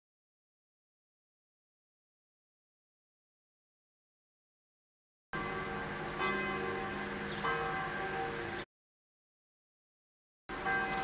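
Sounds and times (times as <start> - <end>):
large bell ringing: 5.4 - 8.7, 10.5 - 11.0.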